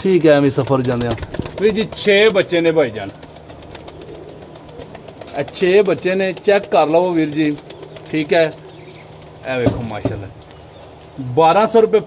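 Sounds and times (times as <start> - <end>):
young pigeons cooing: 0.9 - 11.4.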